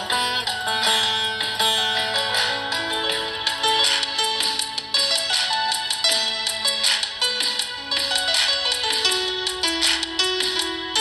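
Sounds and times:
plucked veena melody: 0:00.0 - 0:11.0.

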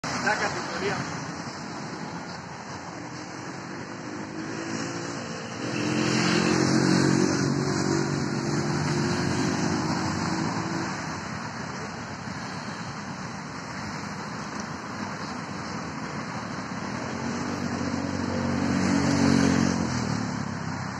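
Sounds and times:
vehicle engine in traffic: 0:00.0 - 0:20.9.

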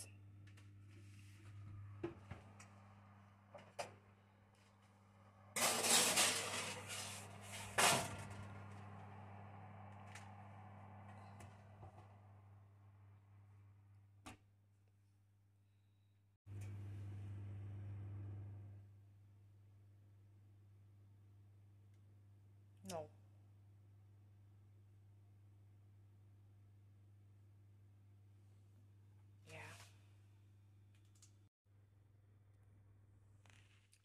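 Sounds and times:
metal tray scraping on oven rack: 0:05.6 - 0:08.8
low steady hum: 0:16.5 - 0:20.5.

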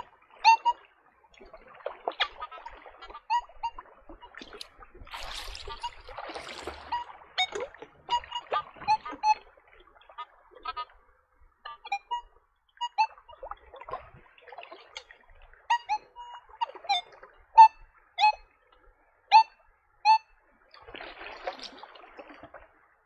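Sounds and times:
metal detector beeps: 0:00.0 - 0:00.8, 0:03.2 - 0:04.4, 0:05.6 - 0:09.4, 0:11.7 - 0:13.4, 0:15.7 - 0:18.5, 0:19.3 - 0:20.3.

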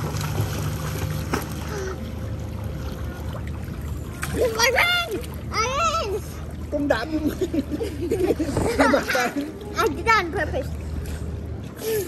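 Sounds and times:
pool water splashing: 0:00.0 - 0:12.0.

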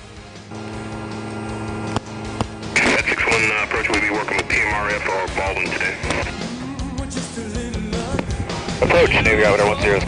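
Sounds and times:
propeller aircraft engine drone: 0:00.0 - 0:06.9
man's voice: 0:02.7 - 0:10.0.

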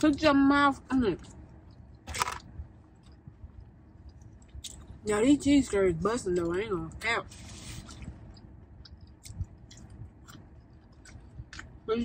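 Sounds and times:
food crunch: 0:01.2 - 0:03.2
faint chewing: 0:05.6 - 0:11.8.

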